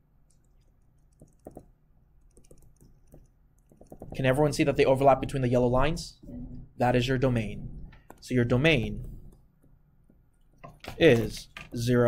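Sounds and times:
stylus tapping on screen: 0.3 - 4.4.

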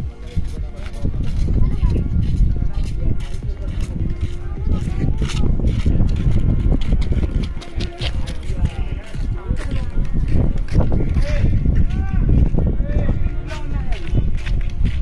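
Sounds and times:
indistinct voices: 0.0 - 14.9
heavy uneven low rumble: 0.0 - 15.0
music: 0.0 - 15.0.

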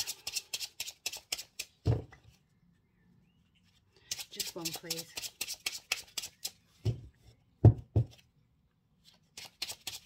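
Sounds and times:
cards being shuffled: 0.0 - 2.3, 3.7 - 6.8, 9.0 - 10.0.

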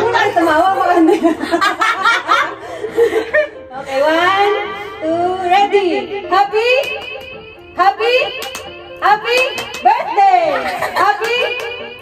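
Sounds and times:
women giggling and laughing: 0.8 - 3.7, 10.5 - 11.6.

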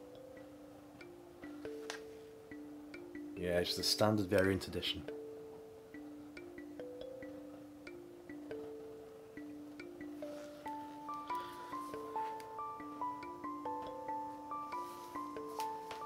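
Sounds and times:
soft melody of struck notes: 0.0 - 16.0.

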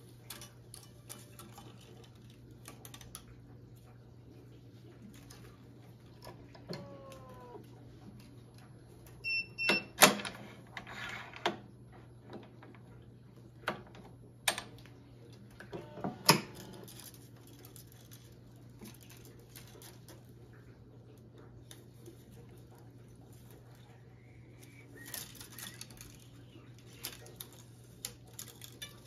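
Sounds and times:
faint handling noise: 10.3 - 29.0.

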